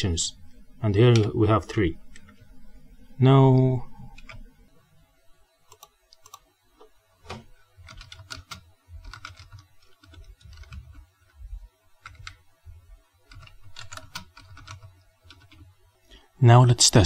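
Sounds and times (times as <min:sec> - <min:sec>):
low hum: 0:00.0 - 0:16.3
keyboard typing clicks: 0:05.7 - 0:06.5, 0:07.3 - 0:11.1, 0:12.0 - 0:12.4, 0:13.3 - 0:15.7.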